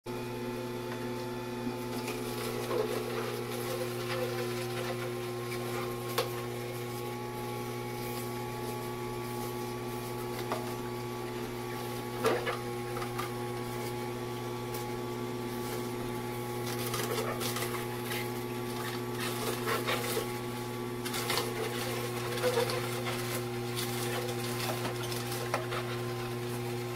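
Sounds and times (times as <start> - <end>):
juicer motor humming: 0.1 - 26.9.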